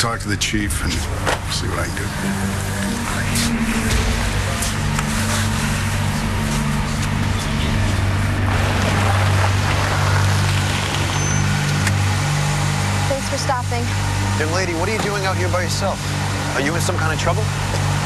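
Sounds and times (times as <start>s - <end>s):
car engine running: 0.0s - 18.0s
road noise: 0.0s - 18.0s.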